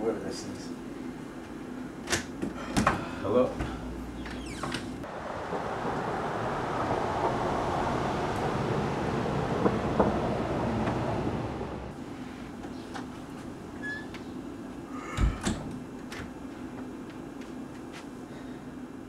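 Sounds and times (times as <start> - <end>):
vehicle passing: 5.0 - 12.0.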